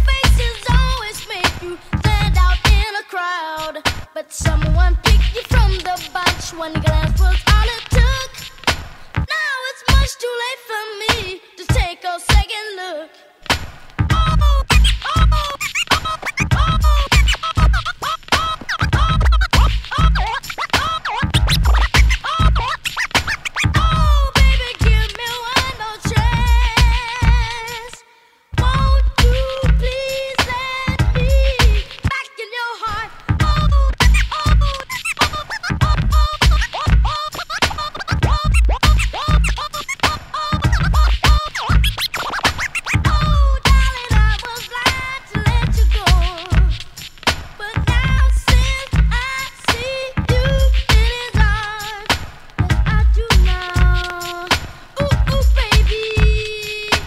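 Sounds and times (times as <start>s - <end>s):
hip-hop beat with heavy kick drum: 0.0s - 3.0s, 3.6s - 9.3s, 9.9s - 10.3s, 11.0s - 12.6s, 13.4s - 28.0s, 28.6s - 32.2s, 32.9s - 57.0s
turntable scratching: 0.0s - 10.3s, 13.4s - 28.0s, 28.6s - 57.0s.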